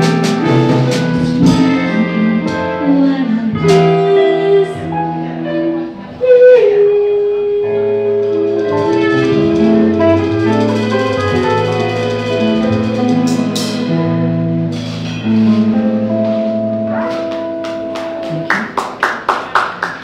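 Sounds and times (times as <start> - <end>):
electric guitar: 0.0 - 18.8
drum kit: 0.0 - 20.0
female singer: 1.2 - 10.1.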